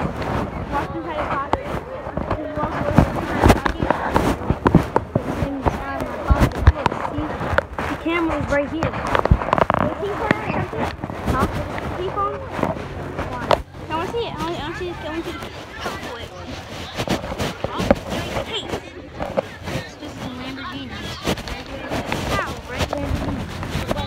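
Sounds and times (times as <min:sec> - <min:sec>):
muffled voices talking: 0:00.0 - 0:24.0.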